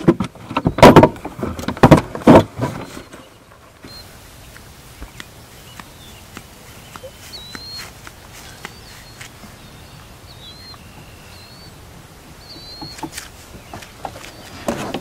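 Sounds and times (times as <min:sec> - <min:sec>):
loud thumps: 0:00.0 - 0:02.9
rustling: 0:00.0 - 0:15.0
soft footsteps on grass: 0:02.9 - 0:14.7
short bird chirps: 0:05.1 - 0:11.8, 0:12.4 - 0:13.3.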